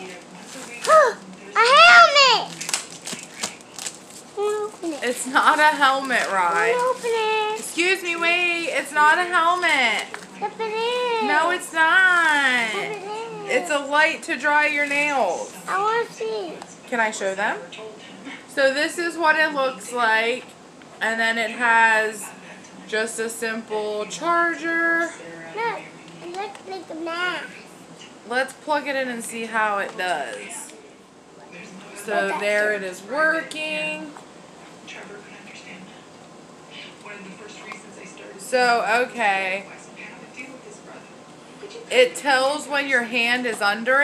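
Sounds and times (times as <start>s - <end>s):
bubble wrap crinkling: 0.4s - 13.3s
young child speaking: 0.9s - 2.5s, 12.7s - 13.6s, 15.7s - 16.6s, 25.6s - 27.6s, 32.1s - 32.6s.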